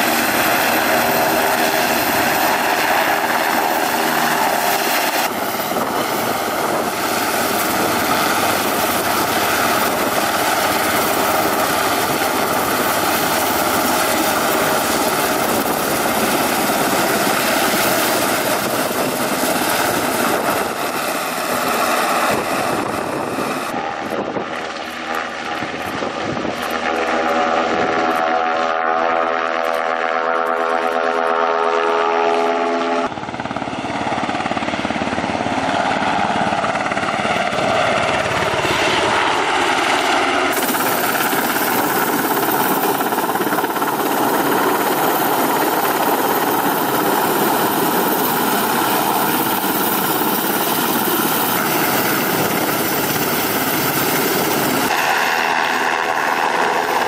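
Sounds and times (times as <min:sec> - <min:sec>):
helicopter rotor and turbines: 0:00.0 - 0:57.0.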